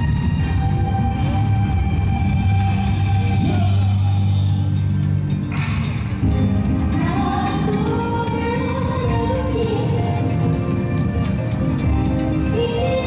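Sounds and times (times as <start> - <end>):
dance music over loudspeakers: 0.0 - 13.0.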